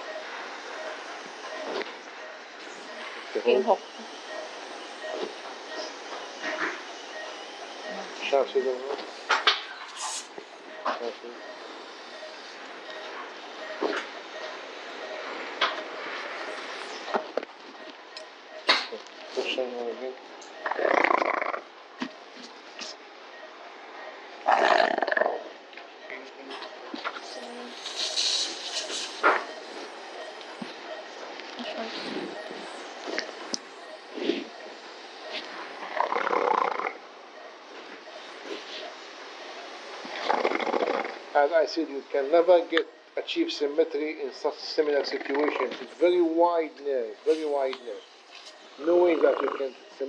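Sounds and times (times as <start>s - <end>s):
faint short beep: 10.7s - 20.8s, 49.7s - 50.0s
steady hiss: 27.3s - 30.8s.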